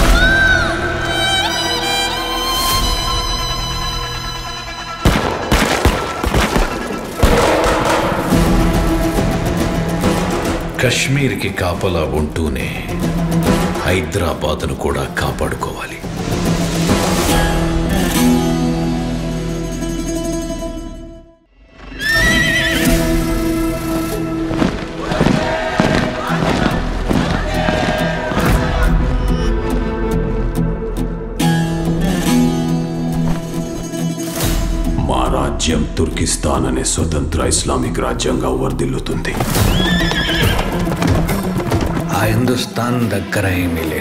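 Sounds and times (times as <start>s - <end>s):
horse whinnying: 21.9s - 23.2s, 39.5s - 41.2s
hoofbeats: 39.4s - 42.4s.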